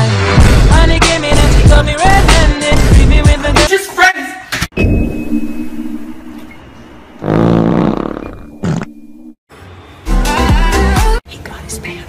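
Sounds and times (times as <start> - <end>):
loud buzzy fart: 7.2 - 9.0.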